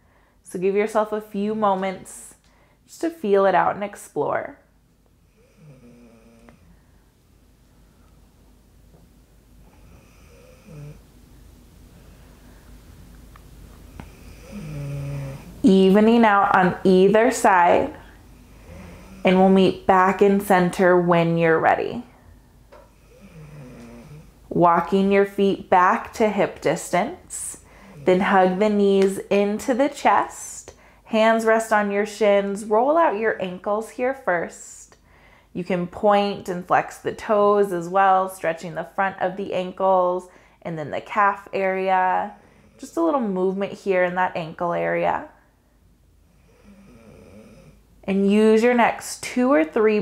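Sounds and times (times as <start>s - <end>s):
faint breathing: 0.0s - 0.5s, 2.4s - 2.9s, 5.2s - 8.4s, 11.8s - 13.1s, 18.0s - 19.3s, 22.1s - 24.5s, 27.6s - 28.2s, 30.7s - 31.1s, 35.0s - 35.6s, 40.3s - 40.6s, 42.3s - 42.8s, 45.4s - 47.9s
dog snoring: 5.3s - 6.7s, 9.6s - 11.0s, 13.9s - 15.6s, 18.5s - 19.4s, 22.9s - 24.3s, 46.3s - 47.8s.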